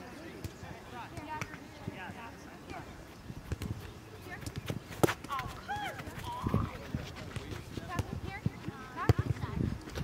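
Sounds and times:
soccer balls being struck: 0.4s - 2.8s, 3.5s - 10.0s.

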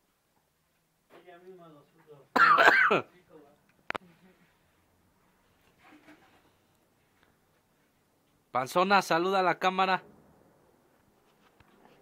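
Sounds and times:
person clearing throat: 2.4s - 3.1s.

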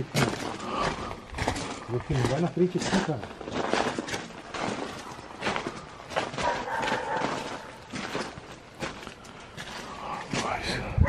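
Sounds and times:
footsteps crunching on gravel: 0.0s - 10.9s.

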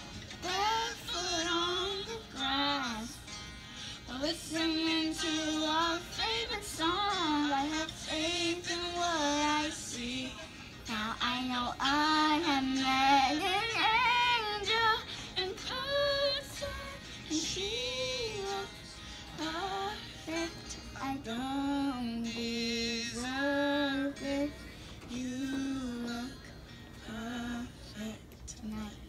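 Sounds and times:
woman singing with vibrato: 0.4s - 3.2s, 4.0s - 29.0s.

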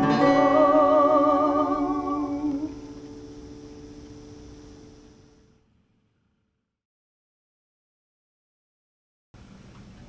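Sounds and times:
voices singing in harmony: 0.0s - 3.0s
strummed acoustic guitar chord: 0.0s - 5.4s.

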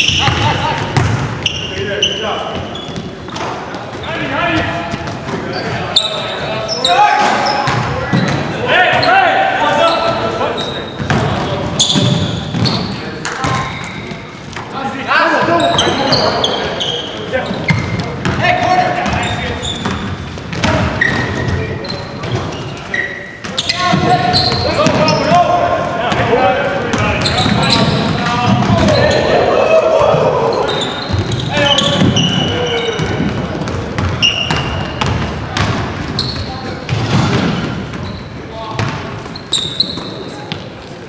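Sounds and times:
sneaker squeaks: 0.0s - 26.2s, 26.9s - 40.8s
players calling out: 0.0s - 40.7s
basketball bouncing on hardwood floor: 33.0s - 36.2s.

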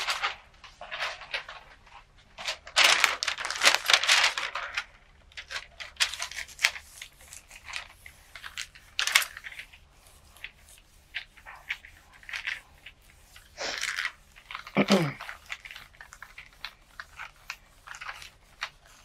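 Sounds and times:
paper rustling: 0.0s - 19.0s
sharp paper crackle: 2.4s - 19.0s
hands rubbing paper flat: 5.8s - 19.0s.

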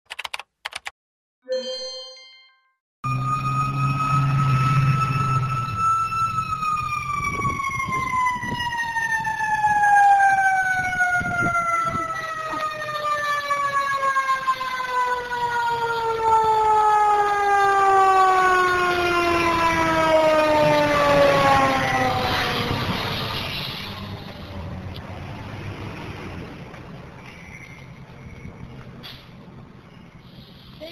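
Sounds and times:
short electronic chime: 1.5s - 2.8s
mechanical siren wailing: 3.0s - 24.2s.

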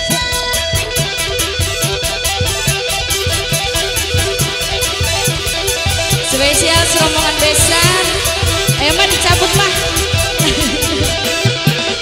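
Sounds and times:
drums: 0.0s - 12.0s
electric guitar fast run: 0.0s - 12.0s
steady cymbal beat: 0.0s - 12.0s.

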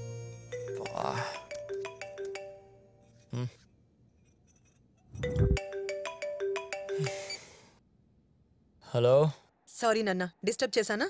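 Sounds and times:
phone ringtone melody: 0.1s - 3.0s, 5.2s - 7.6s.

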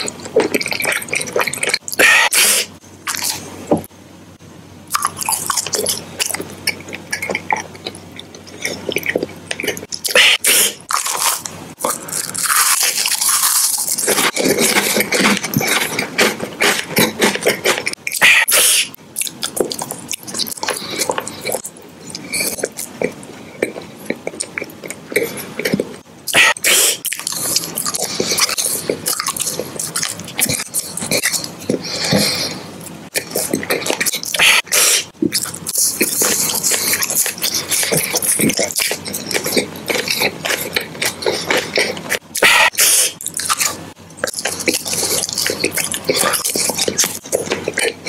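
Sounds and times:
biting and chewing candy: 0.0s - 3.9s, 4.9s - 48.0s
mouth eating sounds: 0.0s - 3.9s, 4.9s - 48.0s.

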